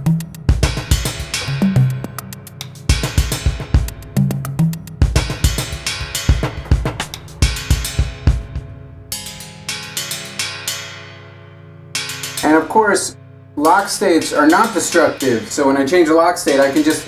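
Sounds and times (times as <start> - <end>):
electronic drum pattern: 0.0 - 9.6, 13.6 - 17.0.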